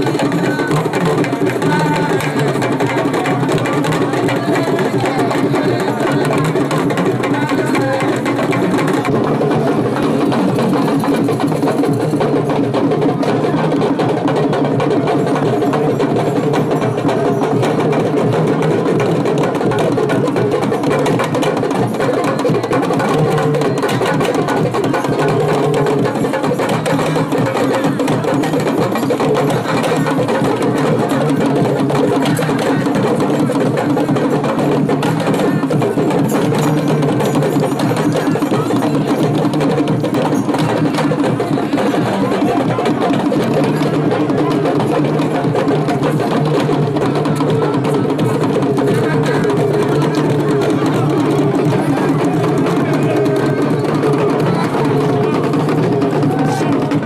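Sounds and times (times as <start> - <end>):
drum ensemble playing fast rhythm: 0.0 - 57.0.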